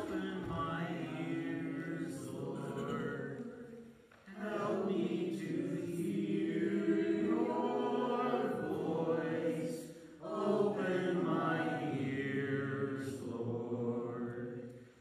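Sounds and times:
voices singing slow chant: 0.0 - 15.0.

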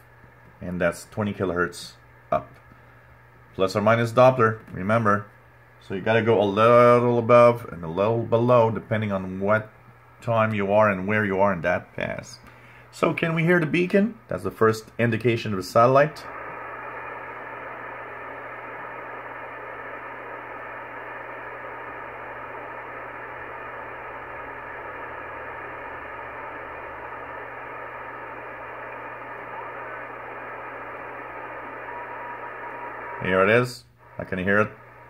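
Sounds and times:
muffled radio hiss: 0.0 - 35.0
low hum: 16.0 - 35.0.

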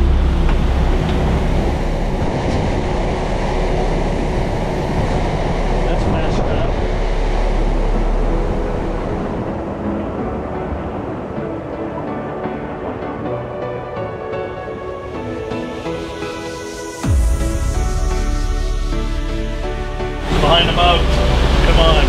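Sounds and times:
wind on the microphone: 0.0 - 13.6
boat engine rumble: 0.0 - 22.0
rushing wake water: 0.0 - 22.0.

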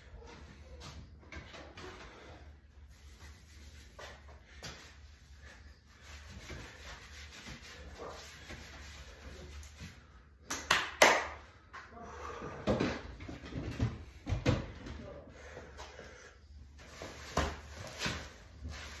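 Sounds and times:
hands clapping: 10.5 - 11.9.

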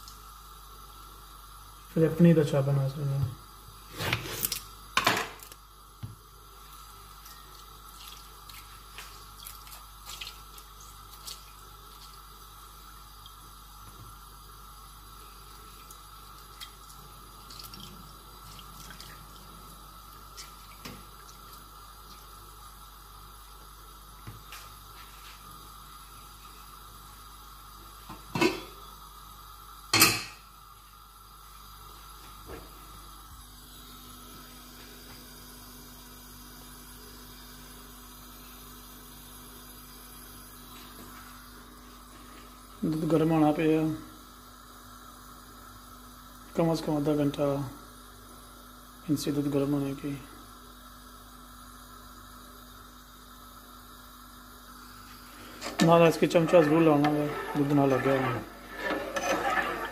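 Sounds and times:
juice dripping into bowl: 5.4 - 25.0.

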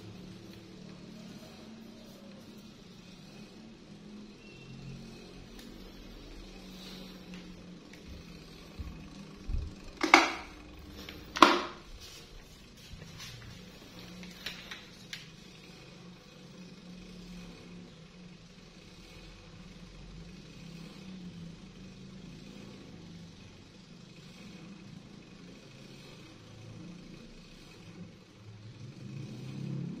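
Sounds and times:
fan blade whirring: 0.0 - 30.0
fan motor hum: 0.0 - 30.0.

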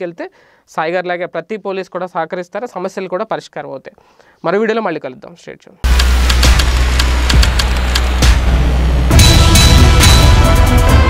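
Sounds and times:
theme music: 5.9 - 11.0.

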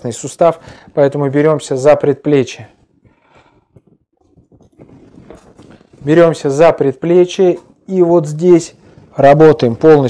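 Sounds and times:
rustling of hands and clothing: 2.7 - 6.8.

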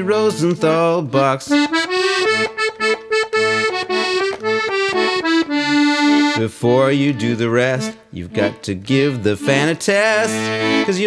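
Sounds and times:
accordion playing: 0.0 - 11.0.

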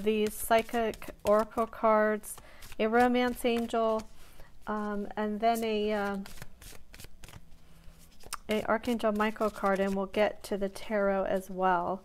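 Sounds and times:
cards being shuffled: 0.0 - 10.2.

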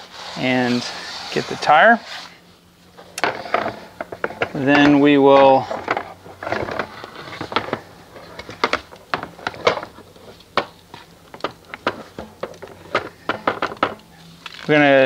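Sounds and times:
brush and bucket knocks: 5.6 - 14.0.

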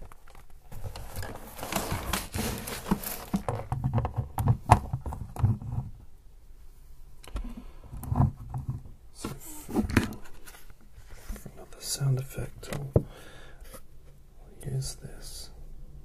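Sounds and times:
handling noise: 0.0 - 5.9
soft breathy whispering: 11.3 - 13.8, 14.4 - 15.8.

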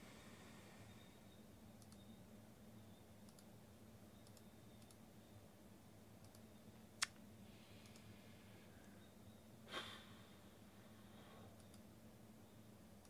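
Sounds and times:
faint low hum: 0.0 - 13.0
computer mouse clicks: 1.8 - 2.2, 3.2 - 3.5, 4.2 - 5.0, 6.2 - 7.2, 7.8 - 8.1, 11.6 - 11.9.

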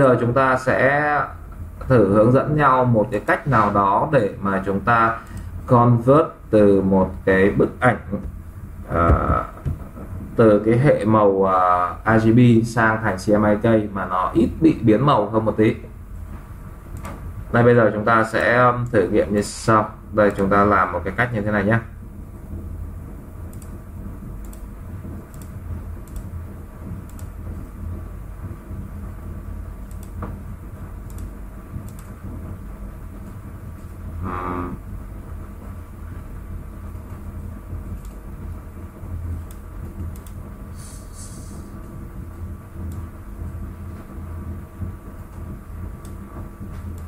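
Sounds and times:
low room hum: 0.0 - 47.0
faint clicks: 23.5 - 23.8, 24.4 - 24.7, 25.3 - 26.3, 27.0 - 27.4, 29.8 - 30.2, 31.1 - 32.2, 38.0 - 38.2, 39.4 - 40.4, 46.0 - 46.2.

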